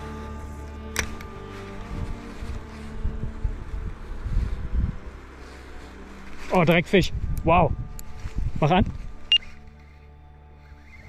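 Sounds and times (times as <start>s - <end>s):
background music with held tones: 0.0s - 11.0s
wind rumbling on microphone: 1.1s - 10.2s.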